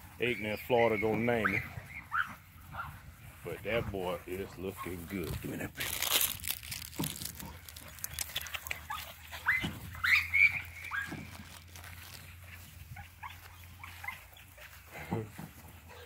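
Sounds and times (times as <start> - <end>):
puppies yipping: 0.0 - 3.1, 4.6 - 5.2, 5.9 - 16.0.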